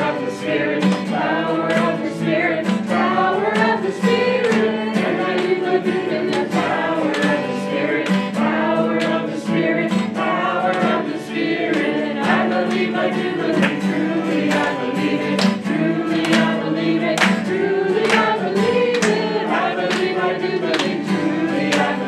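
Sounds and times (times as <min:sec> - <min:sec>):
acoustic guitars strummed: 0:00.0 - 0:22.0
voices singing a worship song: 0:00.0 - 0:22.0.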